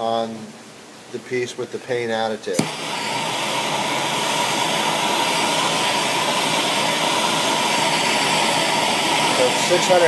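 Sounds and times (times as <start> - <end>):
propane torch hissing: 2.5 - 10.0.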